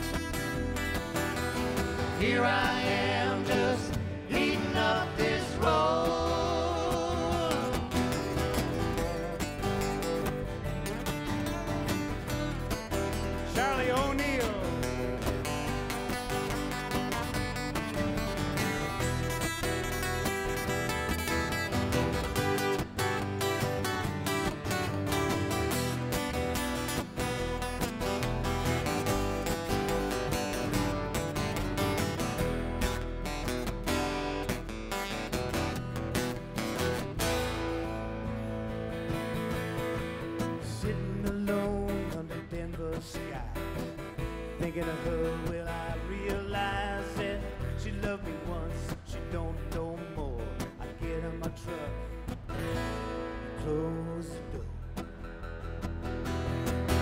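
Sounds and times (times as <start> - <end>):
acoustic guitars strumming: 0.0 - 57.0
upright bass: 0.0 - 57.0.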